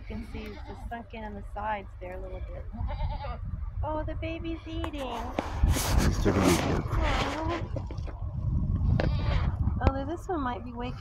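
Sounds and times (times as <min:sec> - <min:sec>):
microphone handling rumble: 0:00.0 - 0:11.0.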